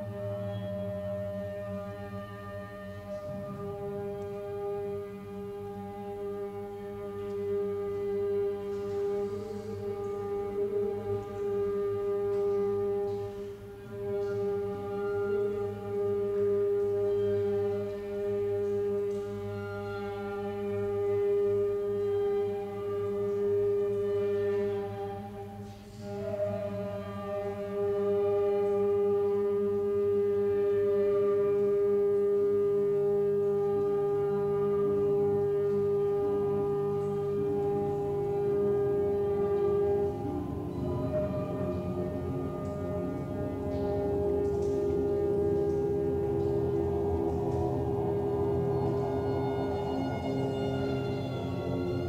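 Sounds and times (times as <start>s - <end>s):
drone music held tone: 0.0s - 52.0s.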